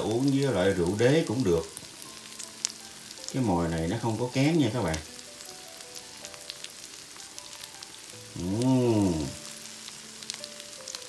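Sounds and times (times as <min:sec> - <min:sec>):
hot oil sizzling and crackling: 0:00.0 - 0:11.0
person murmuring: 0:08.3 - 0:09.5.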